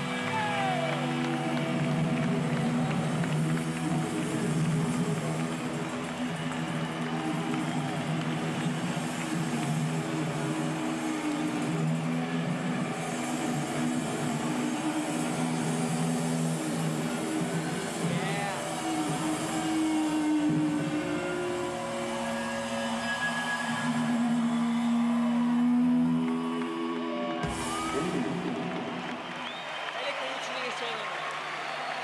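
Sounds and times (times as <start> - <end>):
audience noise: 0.0 - 32.0.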